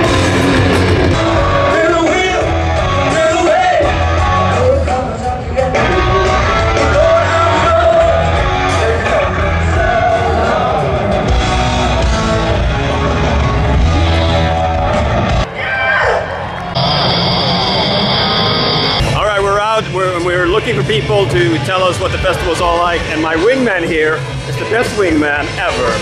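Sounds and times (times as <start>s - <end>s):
heavy bass line: 0.0s - 3.2s, 16.8s - 19.6s
live rock band playing: 0.0s - 15.4s, 16.8s - 19.6s.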